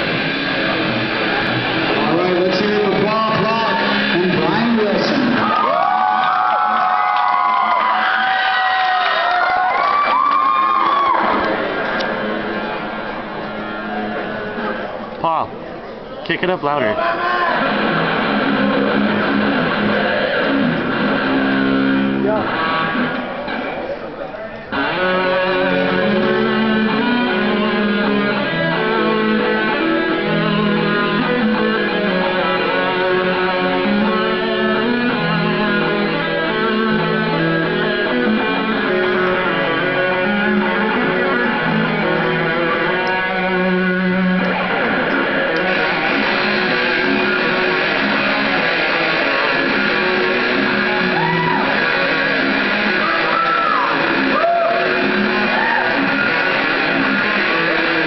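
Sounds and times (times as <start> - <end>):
electric guitars playing metal: 0.0 - 15.6, 16.6 - 23.9, 24.6 - 58.0.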